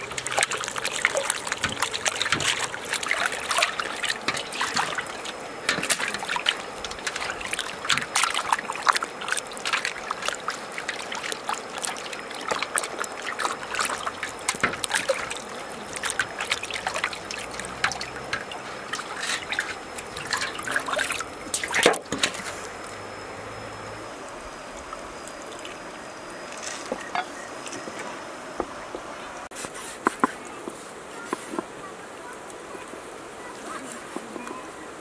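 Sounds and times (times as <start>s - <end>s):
water splashing in steel basin: 0.0s - 22.8s
running water: 0.0s - 35.0s.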